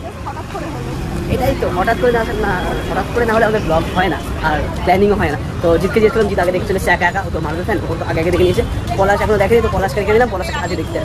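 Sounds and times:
crowd noise: 0.0 - 11.0
people talking: 0.0 - 11.0
traffic rumble: 0.0 - 11.0.

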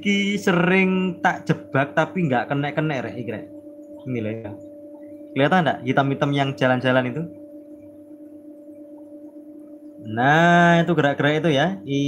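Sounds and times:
aquarium equipment hum: 0.0 - 12.0.

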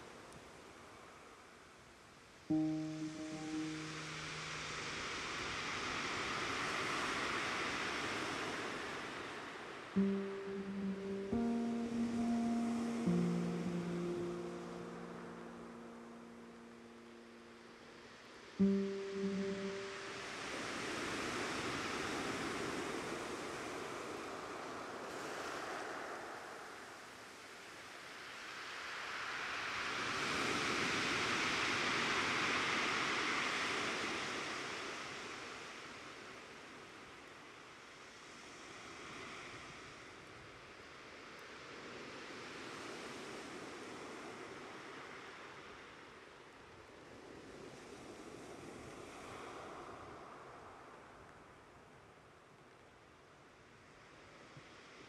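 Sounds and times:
soft rushing noise in waves: 0.0 - 55.0
brief musical note: 2.5 - 5.0, 10.0 - 17.6, 18.6 - 20.6.

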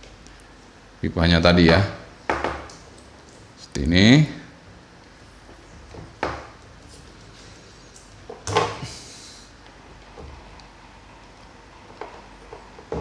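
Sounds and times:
tape handling knocks and rustles: 5.8 - 7.4, 11.9 - 13.0.

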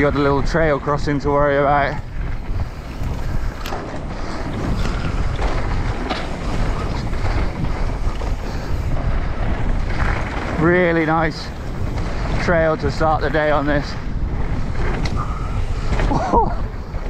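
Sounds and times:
tyres rolling over gravel: 0.0 - 17.0
wind rushing over microphone: 0.0 - 17.0.

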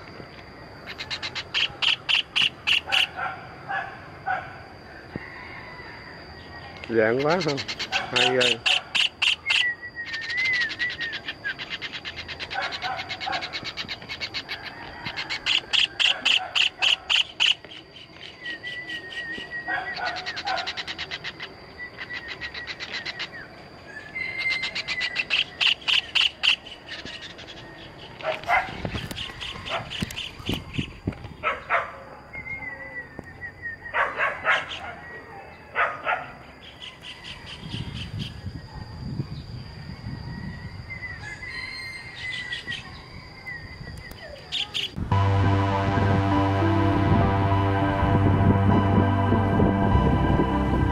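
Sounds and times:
steady high-pitched whine: 0.0 - 50.9
kingfisher chattering calls: 0.9 - 3.2, 7.1 - 14.6
thin wavering bird whistles: 5.2 - 28.2, 32.2 - 35.6, 36.7 - 45.0.

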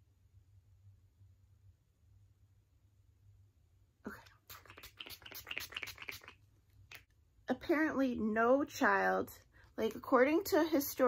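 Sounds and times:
spray bottle spritzing: 4.5 - 7.0.

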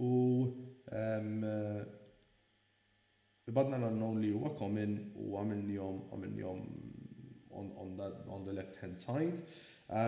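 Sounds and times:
man making hesitation sounds: 0.0 - 1.8.

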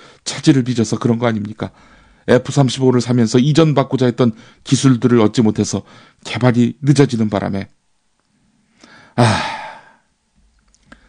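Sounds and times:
faint intake of breath: 0.0 - 0.2, 1.7 - 2.3, 5.9 - 6.2, 8.4 - 10.2
man sighing heavily: 8.8 - 10.1.

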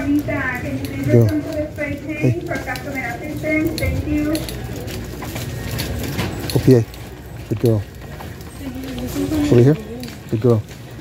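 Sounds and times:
indistinct voices: 0.0 - 11.0
shopping cart rattling: 0.0 - 11.0.

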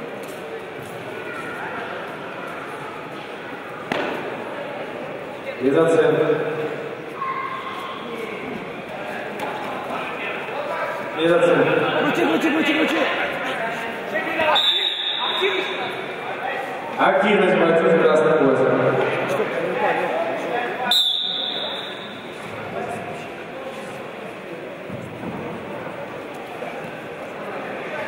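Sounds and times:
voices echoing in sports hall: 0.0 - 28.0.

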